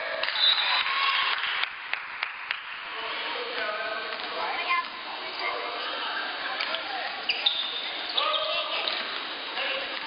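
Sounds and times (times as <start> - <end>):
voices of players and spectators: 0.0 - 10.0
short high squeak: 7.3 - 8.5.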